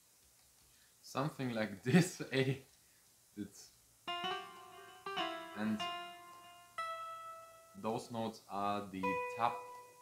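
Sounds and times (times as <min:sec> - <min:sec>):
plucked guitar notes: 0:04.1 - 0:07.8, 0:09.0 - 0:10.0.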